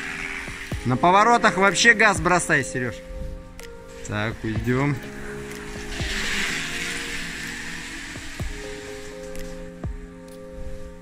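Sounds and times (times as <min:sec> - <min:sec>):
bicycle tyres hissing on concrete: 0:00.0 - 0:02.0, 0:03.1 - 0:11.0
music with sustained chords: 0:00.0 - 0:11.0.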